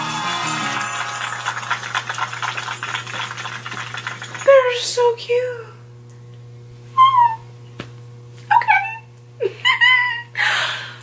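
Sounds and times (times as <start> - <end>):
low electrical hum: 0.0 - 11.0
woman squealing: 7.0 - 7.5.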